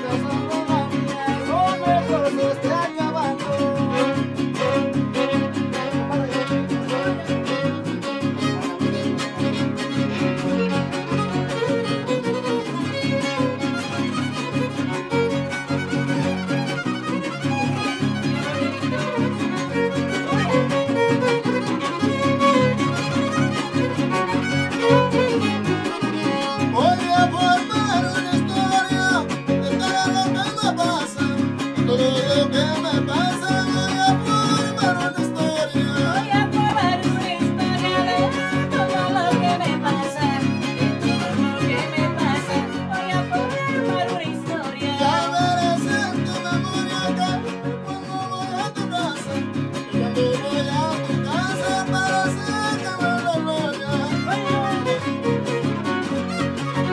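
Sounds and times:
strummed guitars: 0.0 - 56.9
violin melody: 0.0 - 56.9.

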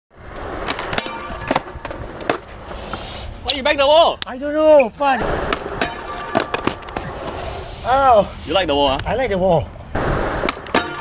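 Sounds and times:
skateboard wheels rolling on concrete: 0.1 - 11.0
skateboard clicks and knocks: 0.3 - 3.0, 5.5 - 7.4.

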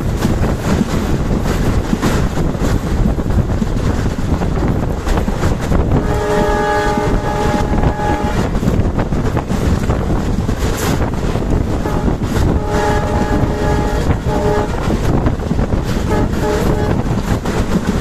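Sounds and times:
rumble of moving train: 0.0 - 18.0
locomotive horn blasts: 5.9 - 8.6, 11.8 - 15.0, 16.0 - 17.0.

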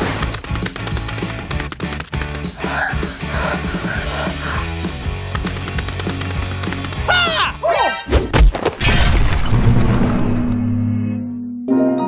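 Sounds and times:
cartoon music with a beat: 0.3 - 8.0.

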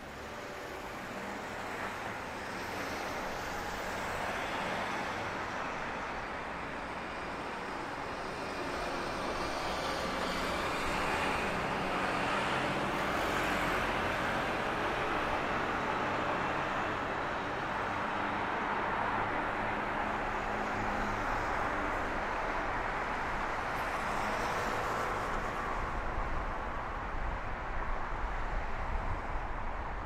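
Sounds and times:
road traffic passing: 0.0 - 30.0.

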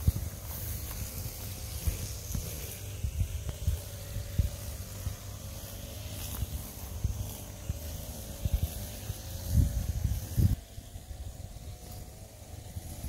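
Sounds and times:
footsteps on grass: 0.0 - 13.0
steady high hiss: 0.0 - 13.0.

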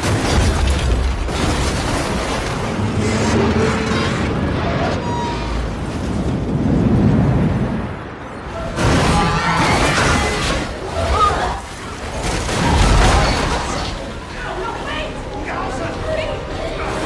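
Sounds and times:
roar of wind and debris: 0.0 - 14.5
dramatic music: 1.3 - 6.6.

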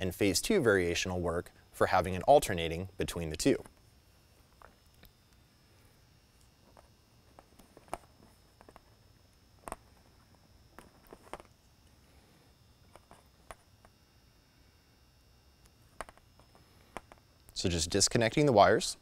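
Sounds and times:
quiet room hum: 0.0 - 19.0
wire leads handling noise: 3.4 - 5.5, 6.3 - 12.0, 12.7 - 14.0, 15.6 - 17.6.

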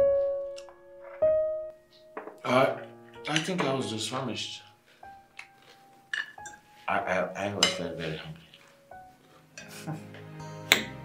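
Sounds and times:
background music: 0.0 - 11.0
cutlery clinking against plates: 5.4 - 6.6, 7.6 - 8.7.

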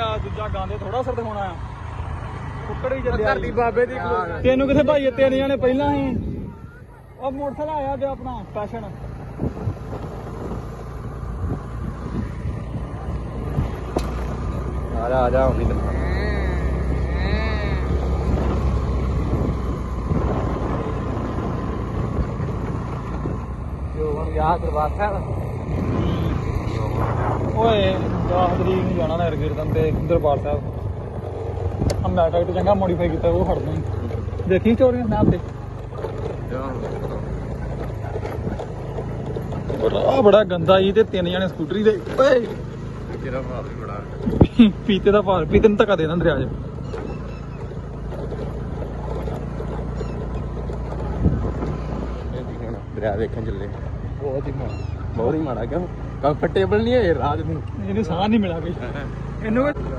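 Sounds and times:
motor scooter engine running: 0.0 - 59.9
wind rumbling on microphone: 2.9 - 55.4.

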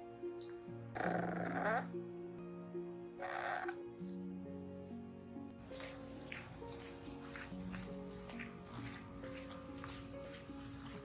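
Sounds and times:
background music: 0.0 - 11.0
puppy vocalizing: 1.0 - 2.0, 3.2 - 3.8.

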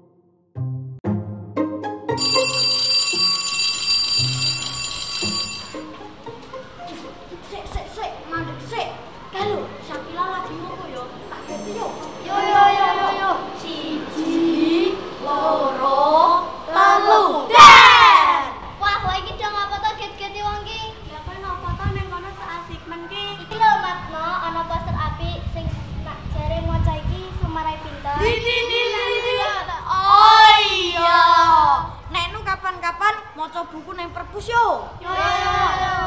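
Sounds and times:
background music with low notes: 0.6 - 2.2
electric school bell ringing: 2.2 - 6.1
children shouting in unison: 17.1 - 18.6.

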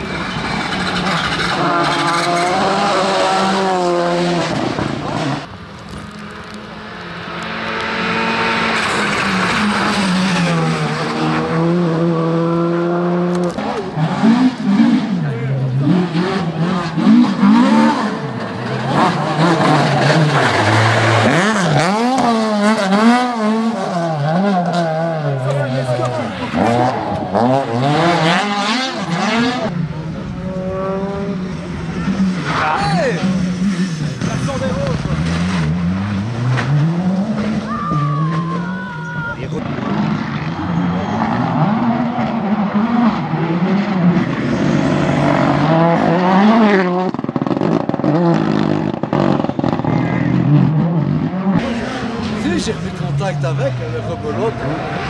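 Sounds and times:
rally cars revving past: 0.0 - 55.0.

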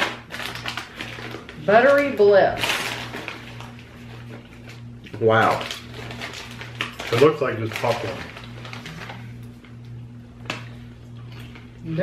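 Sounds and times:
foil snack bag rustling: 0.0 - 9.6
low electrical hum: 0.0 - 12.0.

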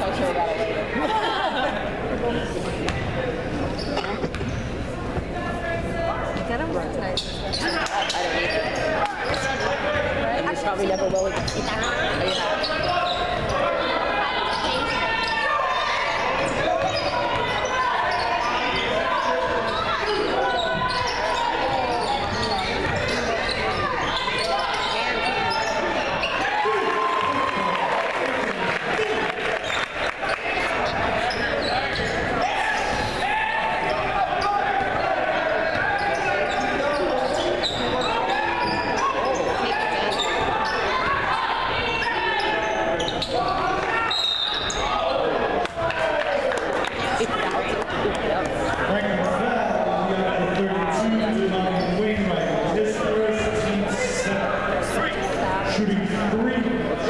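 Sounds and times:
spectators talking and calling out: 0.0 - 57.0.

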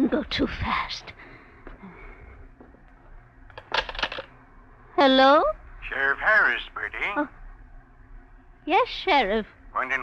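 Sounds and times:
telephone receiver clatter: 3.5 - 4.3.

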